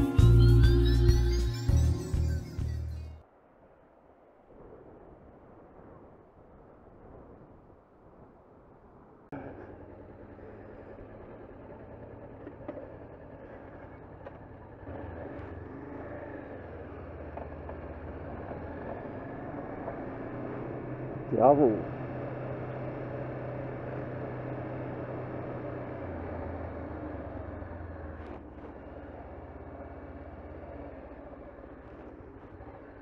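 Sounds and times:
wind noise: 0:03.8 - 0:09.4
motorcycle engine running: 0:09.4 - 0:33.0.

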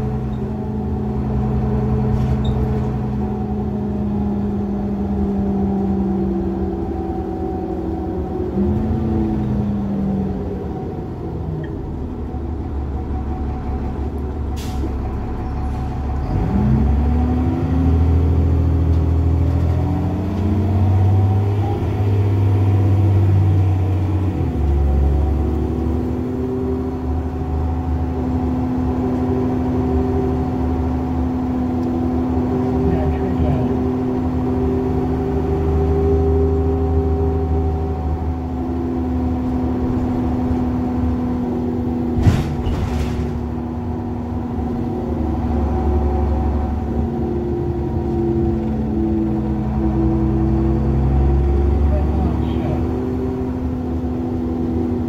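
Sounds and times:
bus diesel engine: 0:00.0 - 0:55.0.

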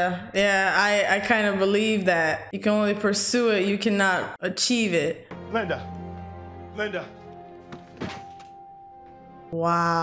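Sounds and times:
soft thunk: 0:07.7 - 0:08.5.

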